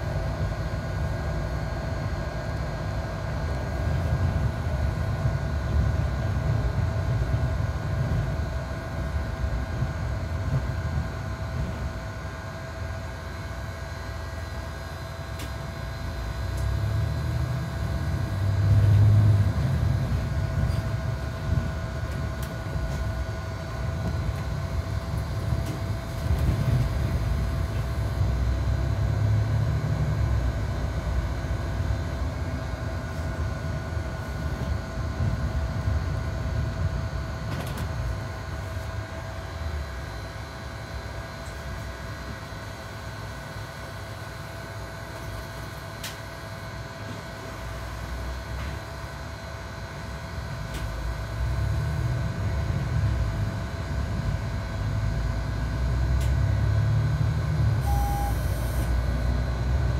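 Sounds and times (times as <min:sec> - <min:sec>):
bus engine and road rumble: 0:00.0 - 0:59.9
thin whine: 0:57.7 - 0:59.6.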